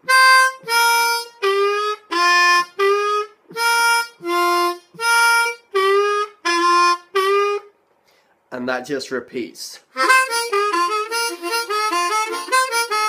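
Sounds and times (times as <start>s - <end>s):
blues harmonica playing: 0.0s - 7.8s, 9.9s - 13.0s.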